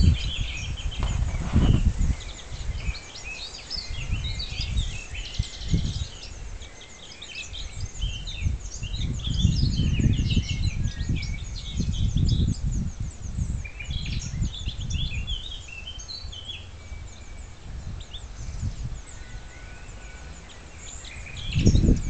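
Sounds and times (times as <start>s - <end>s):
low microphone rumble: 0.0s - 3.2s, 7.7s - 22.0s
nightingale singing: 0.0s - 22.0s.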